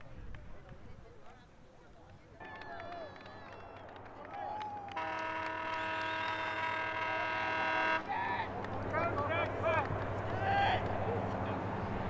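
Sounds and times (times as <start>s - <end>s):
distant voices: 0.4s - 12.0s
steady pitched horn tone: 4.9s - 8.2s.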